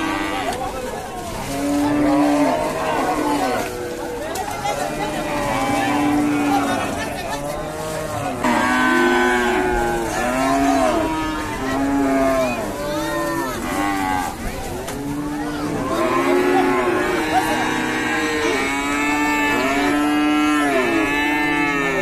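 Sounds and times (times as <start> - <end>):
cows mooing: 0.0 - 22.0.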